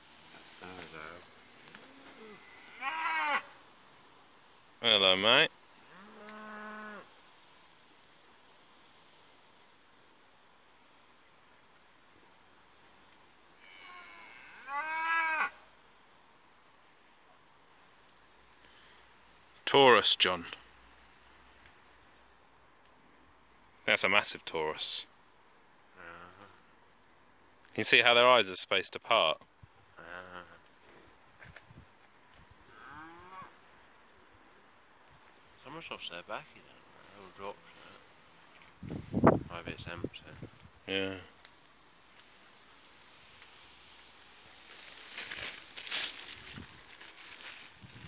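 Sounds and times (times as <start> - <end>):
cattle mooing: 13.6 - 15.5.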